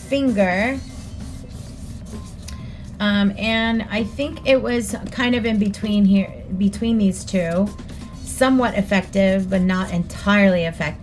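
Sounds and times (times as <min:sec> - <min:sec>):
fingertips rubbing on paper: 0:00.0 - 0:03.2, 0:06.7 - 0:11.0
steady low hum: 0:00.0 - 0:11.0.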